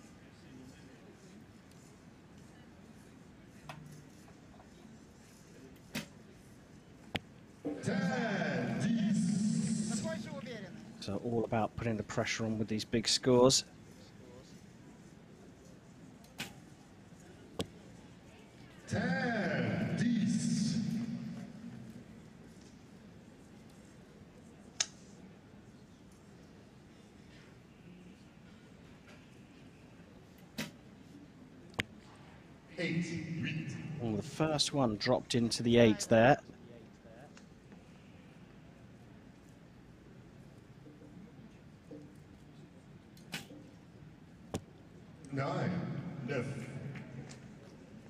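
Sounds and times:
man calling out: 7.7s - 11.2s, 18.9s - 21.5s
arrow striking target: 30.6s - 30.8s.

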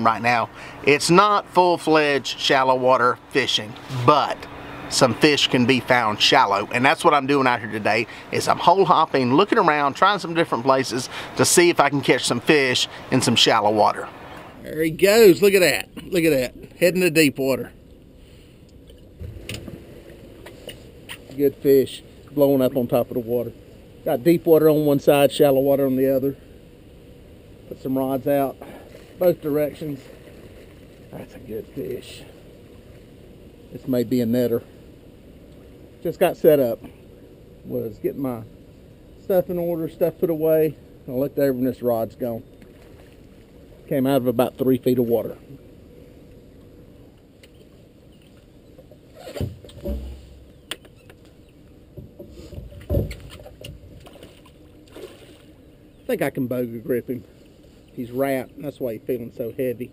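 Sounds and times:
faint low rumble: 0.0s - 59.9s
low background noise: 0.0s - 59.9s.

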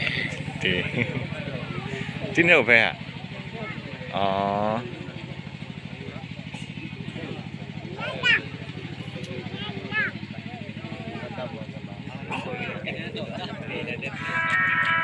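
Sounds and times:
engine idling: 0.0s - 15.0s
outdoor crowd voices: 0.0s - 15.0s
voice holding a level note: 14.1s - 15.0s.

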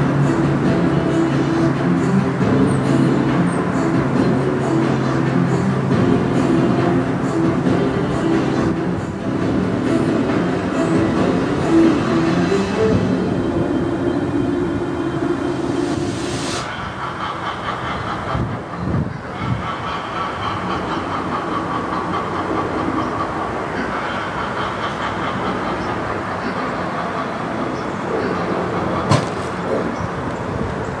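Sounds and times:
sharp knock: 29.1s - 29.4s.

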